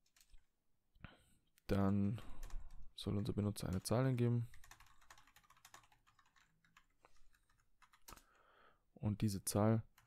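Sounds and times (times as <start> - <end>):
faint computer keyboard typing: 0.0 - 0.5, 1.7 - 8.5.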